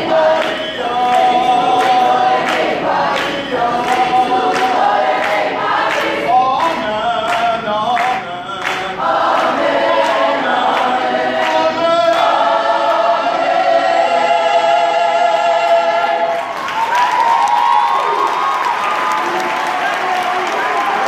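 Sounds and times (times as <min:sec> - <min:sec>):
mixed choir singing: 0:00.0 - 0:16.6.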